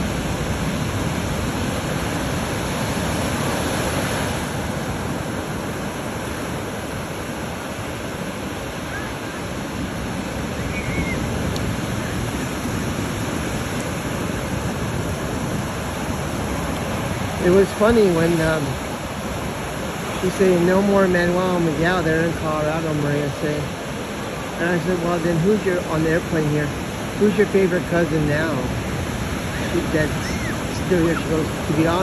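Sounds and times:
ocean surf breaking: 0.0s - 32.0s.

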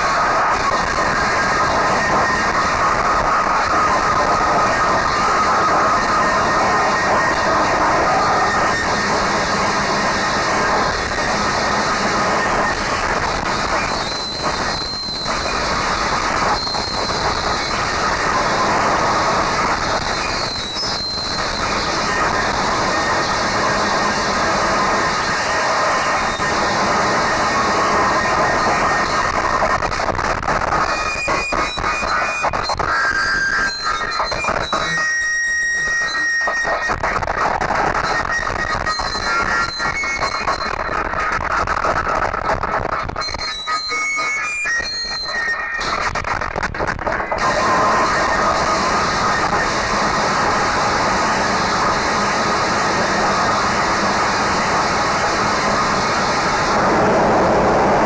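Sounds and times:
harsh noise wall: 0.0s - 58.0s
high whistling tones: 0.1s - 29.9s, 30.8s - 36.9s, 37.9s - 41.0s, 43.0s - 46.4s, 47.1s - 58.0s
shrill squealing tones: 1.1s - 29.3s.

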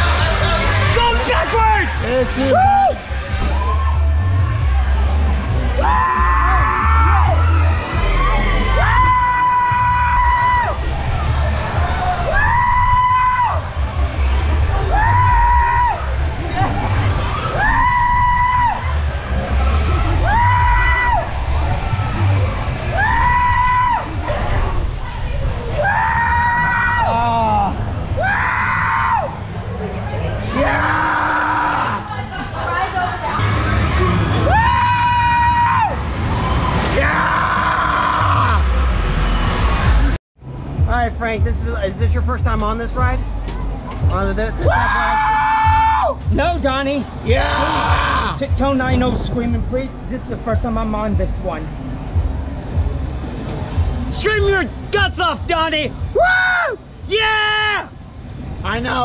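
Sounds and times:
loud ride music: 0.0s - 24.9s, 32.0s - 59.0s
low rumble: 33.4s - 44.9s, 45.6s - 54.1s
riders yelling whoo: 47.3s - 48.4s.

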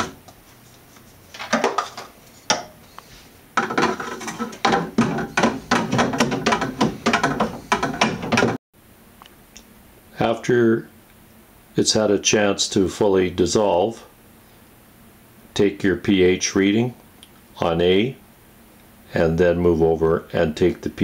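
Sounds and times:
paddle scraping plastic jug: 3.6s - 8.5s
paddle knocking against plastic jug: 3.6s - 8.6s.

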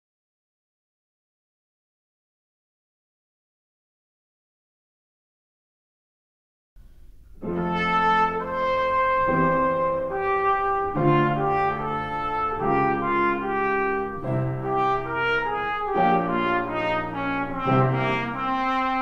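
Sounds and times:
trumpet playing slow melody: 7.4s - 19.0s.

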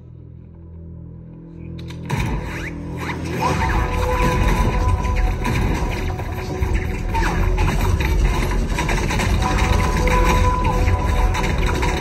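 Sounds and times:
film music with heavy bass: 0.0s - 12.0s.

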